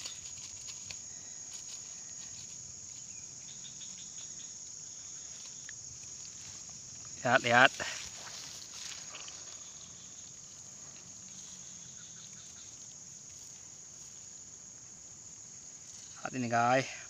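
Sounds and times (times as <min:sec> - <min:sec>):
high-pitched insect chorus: 0:00.0 - 0:17.0.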